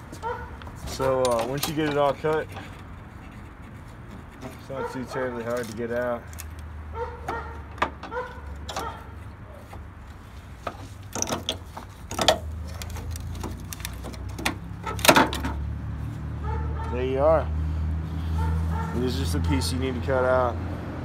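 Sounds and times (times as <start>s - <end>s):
knocking and scraping of plastic part: 10.6s - 15.6s.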